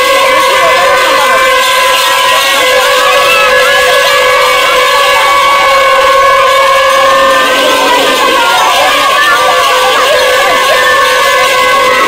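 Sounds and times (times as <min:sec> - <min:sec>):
crowd singing and shouting: 0:00.0 - 0:12.0.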